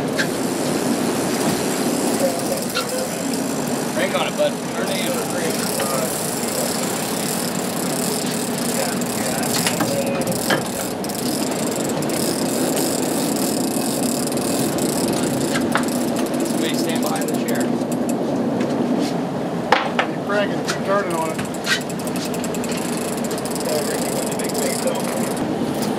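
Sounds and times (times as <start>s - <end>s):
water rushing past hull: 0.0s - 18.1s
boat engines droning: 0.0s - 25.9s.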